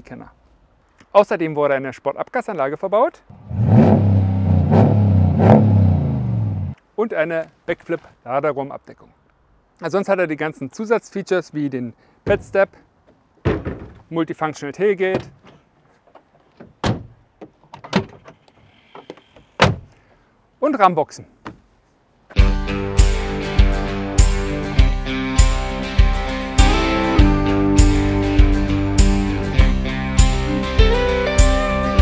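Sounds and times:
tailgate door slamming: 13.4s - 14.0s, 16.6s - 17.2s, 19.6s - 19.9s
tailgate door clunks: 16.6s - 18.4s, 19.5s - 19.9s.

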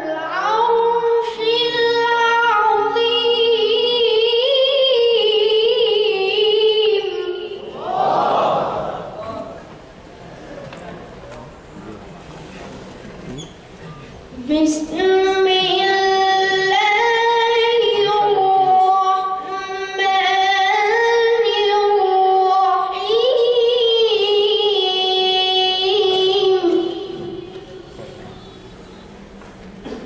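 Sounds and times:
child reciting melodically: 0.0s - 7.7s, 14.3s - 27.9s.

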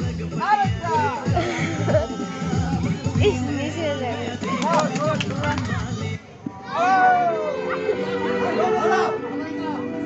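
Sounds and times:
people chattering and calling out: 0.0s - 10.0s.

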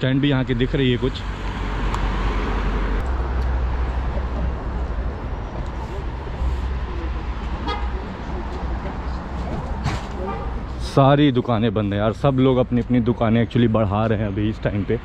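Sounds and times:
road noise rumble: 0.0s - 15.0s.

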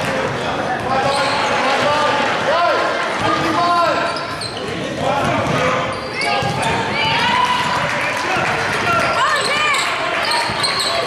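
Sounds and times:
sneakers squeaking on gym floor: 0.3s - 1.6s, 3.2s - 7.2s, 9.1s - 11.0s
basketball bouncing: 6.3s - 9.2s.

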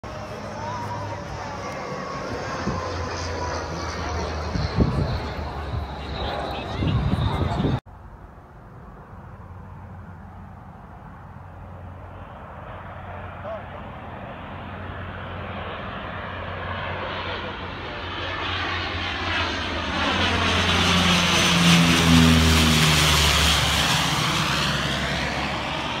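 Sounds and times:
turboprop plane passing overhead: 0.0s - 26.0s.

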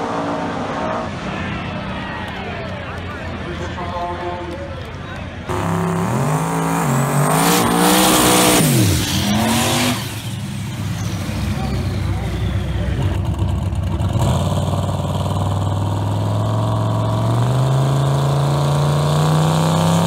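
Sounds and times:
drag car engines revving: 0.0s - 20.0s.

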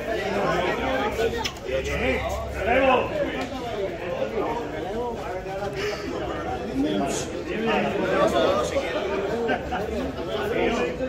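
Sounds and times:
men talking at once: 0.0s - 11.0s.

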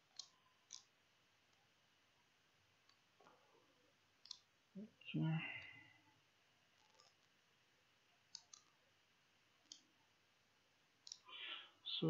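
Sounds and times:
faint computer clicks: 8.3s - 8.8s.

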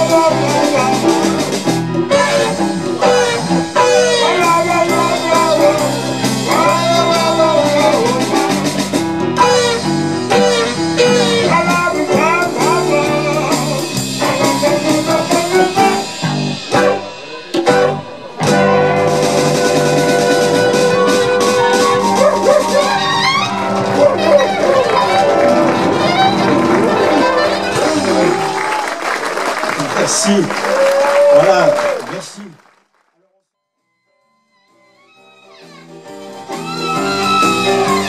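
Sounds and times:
electric keyboard: 0.0s - 28.7s, 34.7s - 38.0s
saxophone: 0.0s - 28.8s, 33.6s - 38.0s
electric guitar: 0.0s - 28.9s, 35.2s - 38.0s
congas: 0.0s - 32.4s, 35.0s - 38.0s
drums: 0.0s - 32.5s, 35.0s - 38.0s
bass: 0.0s - 32.6s, 34.6s - 38.0s.

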